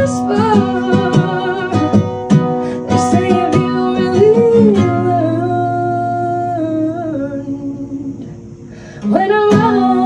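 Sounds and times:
acoustic guitar chord: 0.0 - 10.0
woman singing: 0.0 - 10.0.

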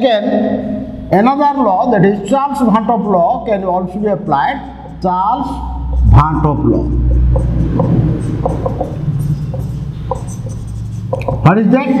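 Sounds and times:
steady low hum: 0.2 - 11.8
marker squeaking on whiteboard: 3.0 - 6.0, 7.1 - 11.5.

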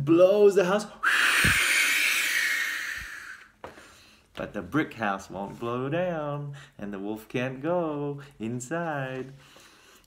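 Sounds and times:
man blowing hard breath: 1.0 - 4.2.

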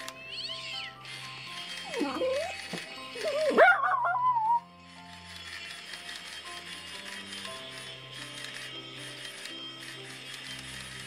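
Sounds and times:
wavering animal cry: 0.2 - 4.7.

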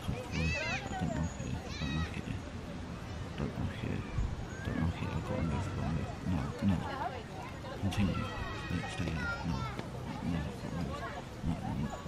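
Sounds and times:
muffled indistinct voices: 0.0 - 12.0.

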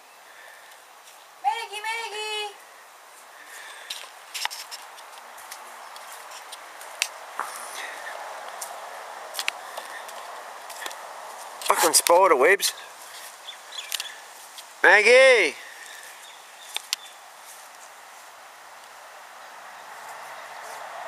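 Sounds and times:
low outdoor background noise: 0.0 - 21.0
person's sing-song call: 1.4 - 2.6
faint clicks and rustles: 2.6 - 12.1.

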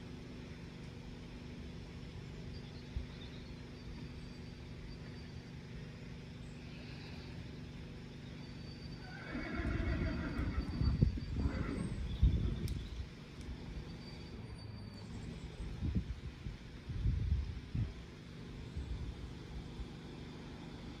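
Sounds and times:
low background rumble: 0.0 - 21.0
horse whinnying: 9.0 - 12.0.

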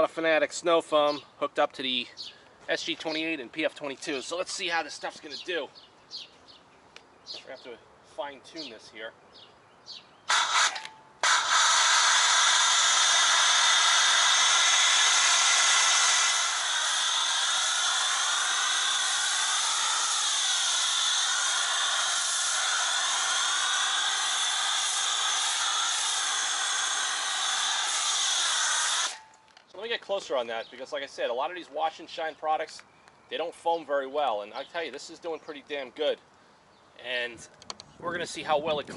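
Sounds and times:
pressure washer foam spray hissing: 10.3 - 29.3.

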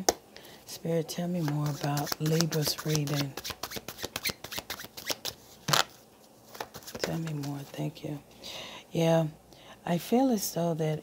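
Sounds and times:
cards being shuffled: 1.4 - 7.8.

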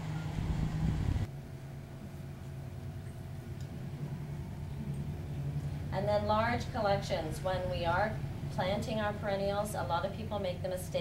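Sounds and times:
low steady rumbling: 0.0 - 11.0
quiet steady hum: 0.0 - 11.0.

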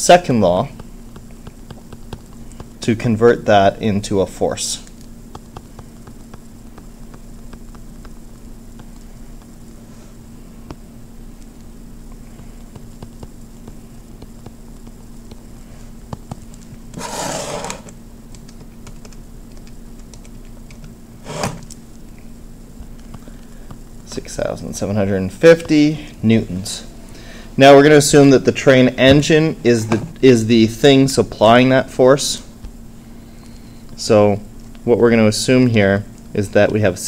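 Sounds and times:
steady low hum: 0.0 - 37.0.

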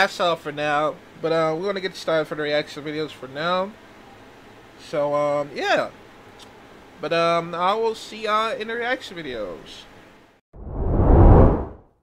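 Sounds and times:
whoosh: 10.6 - 11.9.

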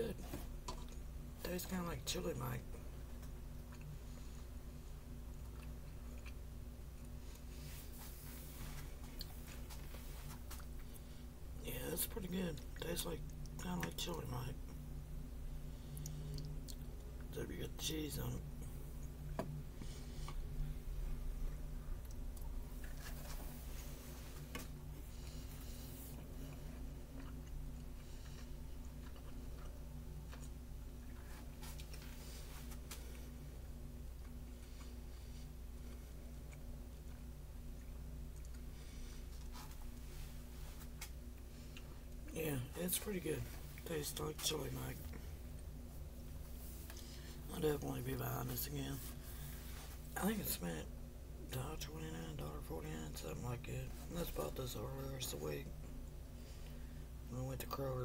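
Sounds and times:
low steady hum: 0.0 - 58.0
person chewing food: 3.0 - 11.2, 15.8 - 17.3, 23.9 - 33.4, 34.0 - 42.3.

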